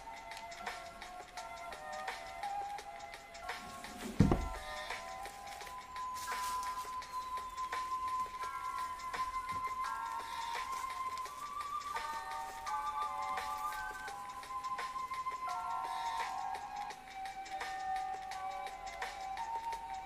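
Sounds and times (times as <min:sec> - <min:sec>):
soft synth background music: 0:00.0 - 0:20.0
low thump: 0:04.0 - 0:04.6.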